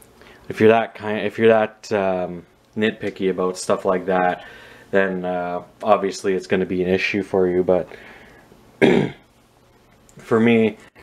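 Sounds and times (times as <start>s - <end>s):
man clearing his throat: 8.8s - 9.2s.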